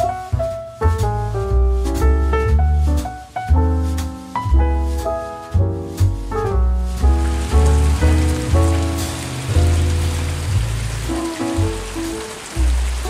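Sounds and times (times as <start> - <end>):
jazz music: 0.0 - 13.0
steady rain pouring: 6.7 - 13.0.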